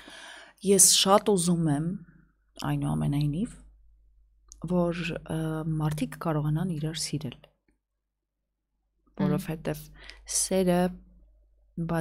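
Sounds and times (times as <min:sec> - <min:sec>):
woman's voice: 0:00.6 - 0:02.0, 0:09.2 - 0:11.0.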